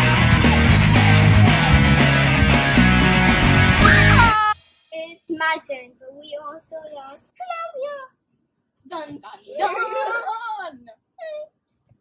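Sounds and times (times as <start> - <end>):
girl wailing playfully: 3.8 - 4.6.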